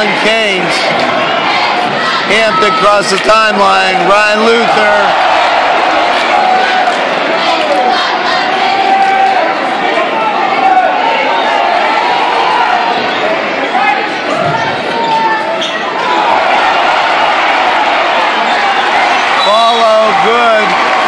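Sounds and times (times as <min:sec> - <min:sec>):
crowd talking and shouting: 0:00.0 - 0:21.0.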